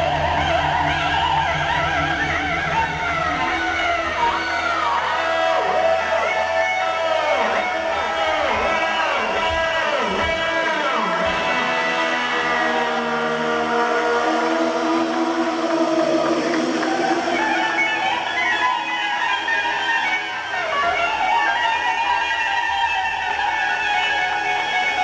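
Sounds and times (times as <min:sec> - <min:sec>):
electric guitar bending notes: 0:00.0 - 0:25.0
live rock band playing: 0:00.0 - 0:25.0.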